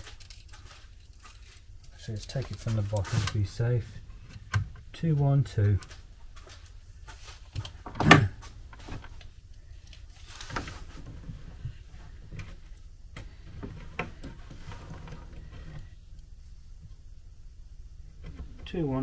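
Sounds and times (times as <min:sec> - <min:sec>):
scraping rustle: 0:00.0 - 0:04.3, 0:05.8 - 0:07.6, 0:10.0 - 0:12.6, 0:13.4 - 0:16.0.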